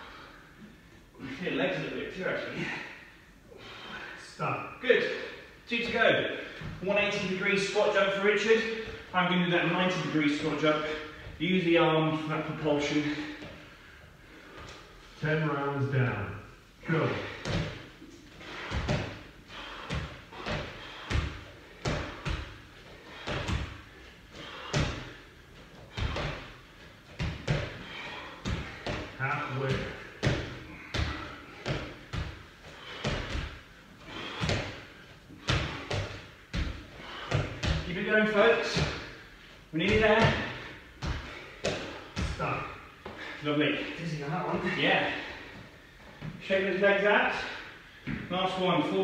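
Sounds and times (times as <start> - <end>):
feet thudding on gym mats: 5.0 - 11.5, 16.8 - 46.5.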